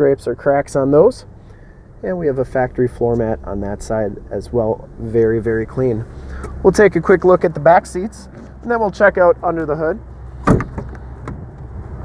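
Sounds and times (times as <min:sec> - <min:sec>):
car door latch clunk: 0:10.4 - 0:11.4.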